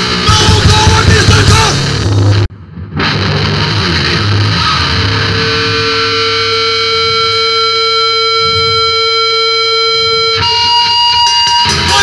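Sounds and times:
low bass rumble: 0.0 - 9.2
electric guitar feedback tone: 0.0 - 12.0.

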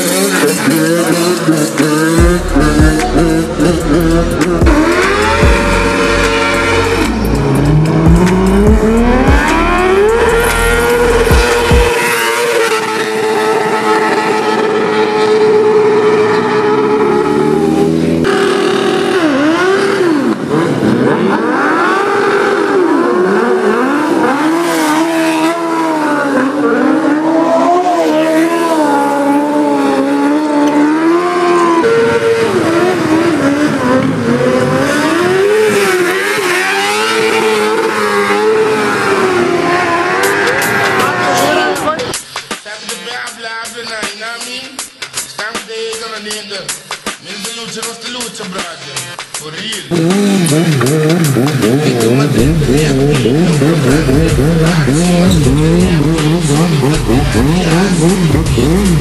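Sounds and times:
car engine at high revs: 0.0 - 42.2, 49.8 - 59.0.

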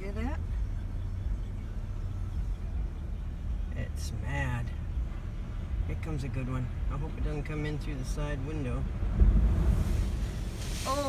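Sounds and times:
hiss of spray: 9.7 - 11.0.

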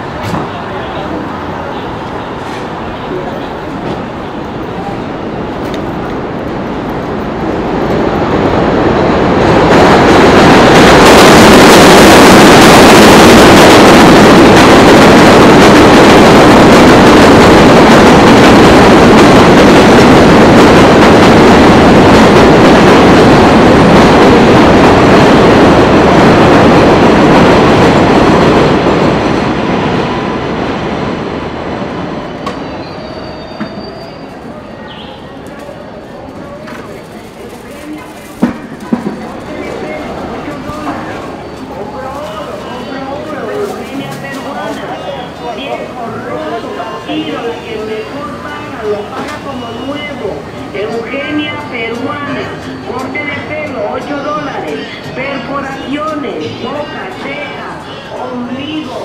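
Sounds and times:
subway train passing on viaduct: 0.0 - 59.0.

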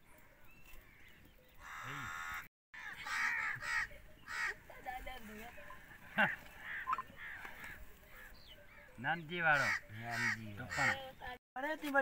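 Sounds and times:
crows cawing: 0.8 - 4.7, 6.2 - 11.2.

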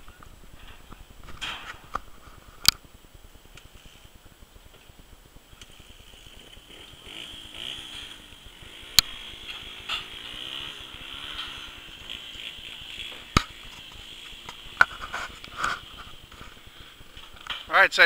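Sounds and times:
distant engine running: 0.0 - 17.6.

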